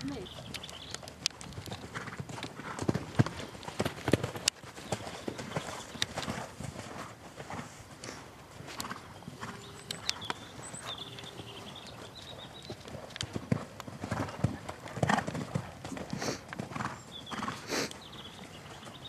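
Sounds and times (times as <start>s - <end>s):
horse hoofbeats cantering: 0.0s - 19.0s.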